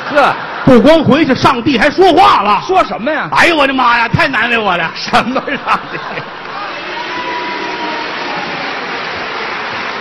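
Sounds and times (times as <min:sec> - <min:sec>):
crowd applause: 0:05.0 - 0:10.0.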